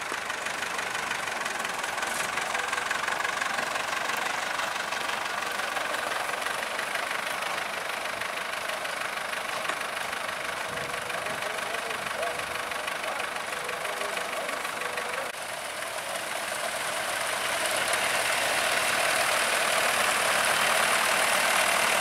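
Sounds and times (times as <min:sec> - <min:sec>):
tractor engines idling: 0:00.0 - 0:22.0.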